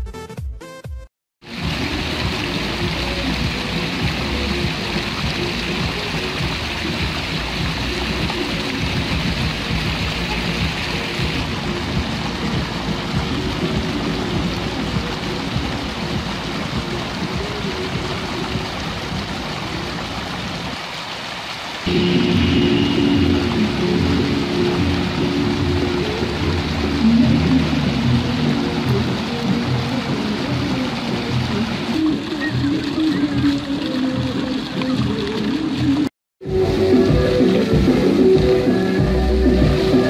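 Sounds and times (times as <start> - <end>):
fountain water splashing: 1.4 - 40.0.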